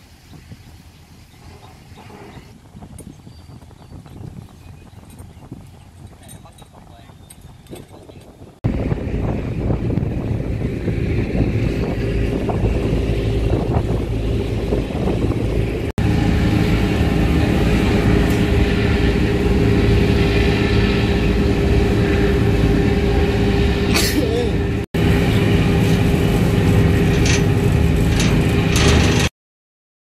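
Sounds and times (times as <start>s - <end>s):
churning wake: 0.0s - 29.3s
wind: 0.0s - 29.3s
ferry engines droning: 3.9s - 29.3s
loud engine rumble: 4.4s - 29.3s.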